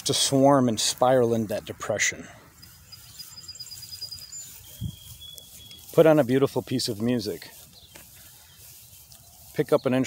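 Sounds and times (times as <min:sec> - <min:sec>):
bird trilling chirps: 0:02.5 - 0:06.3
high bird whistle: 0:02.9 - 0:05.9.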